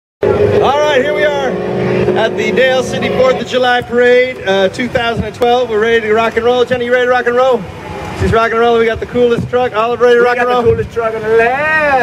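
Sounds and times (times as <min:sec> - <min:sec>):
steady hum: 0:00.2 - 0:10.1
man calling out: 0:09.7 - 0:12.0.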